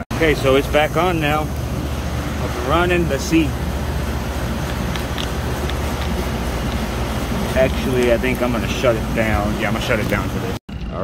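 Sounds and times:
condensing unit humming: 0.0 - 11.0.

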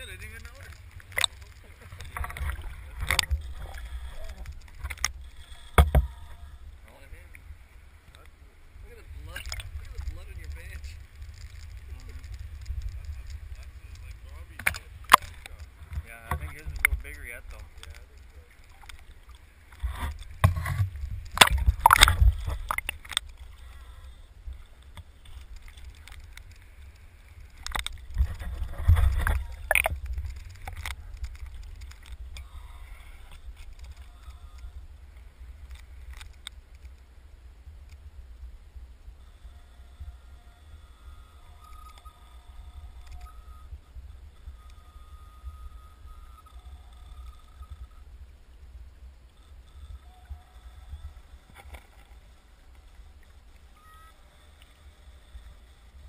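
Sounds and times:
muffled underwater river current: 0.0 - 56.0
water splashes: 8.8 - 34.0.

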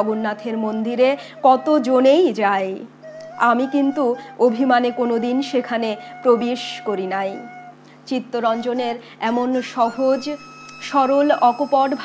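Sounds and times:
woman speaking: 0.0 - 7.5, 8.1 - 12.0.

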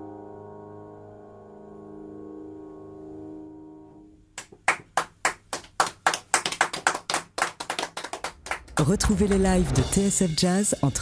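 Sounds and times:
hands clapping in applause: 4.4 - 9.5.

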